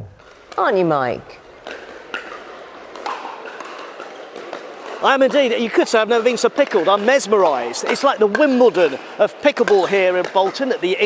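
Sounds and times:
indoor crowd hubbub: 0.0 - 11.0
paddles striking plastic balls: 1.4 - 10.9.

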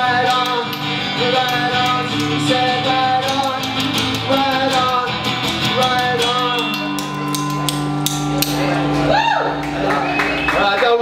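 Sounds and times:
sharp percussive hits: 0.2 - 9.8.

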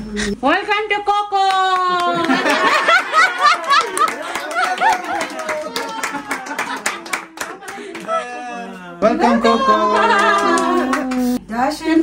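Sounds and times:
people clapping: 1.4 - 8.4, 9.5 - 11.4.

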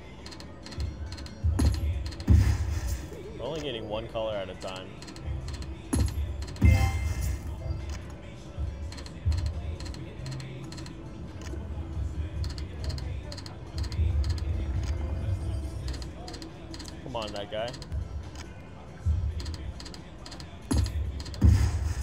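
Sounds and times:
slot machine reels ticking: 0.0 - 8.1, 8.8 - 11.6, 12.4 - 15.0, 15.6 - 18.5, 19.3 - 22.0
pulsing electronic game soundtrack: 0.0 - 18.5, 19.1 - 22.0
loud slot machine burst: 6.6 - 7.6.

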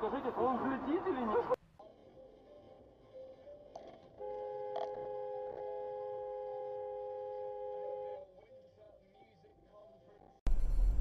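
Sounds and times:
car horn blast: 4.2 - 8.2.

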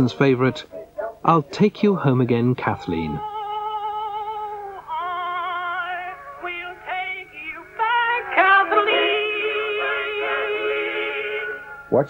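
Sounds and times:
old phonograph singer with vibrato: 2.5 - 11.9.

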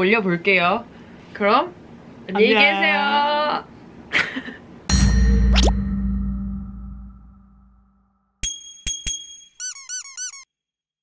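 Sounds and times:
ringing chime strike: 4.9 - 9.6
squeaky chirps: 9.6 - 10.5.

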